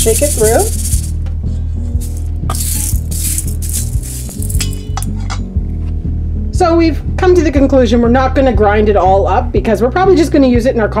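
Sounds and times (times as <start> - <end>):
sugar crystals rattling in strainer: 0.0 - 1.2, 2.0 - 4.8
background music with low bass: 0.0 - 11.0.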